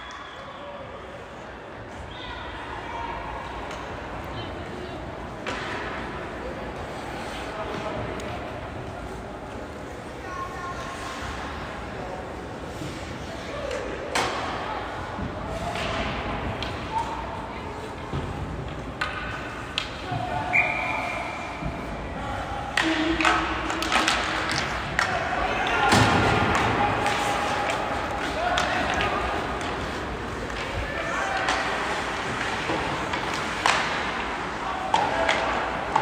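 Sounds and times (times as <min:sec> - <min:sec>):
hockey sticks and puck clacking: 0:03.4 - 0:10.0, 0:10.8 - 0:36.0.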